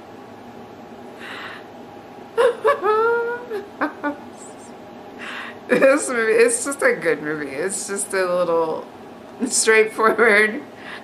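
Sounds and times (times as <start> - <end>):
woman laughing: 2.4 - 4.7, 5.7 - 6.1.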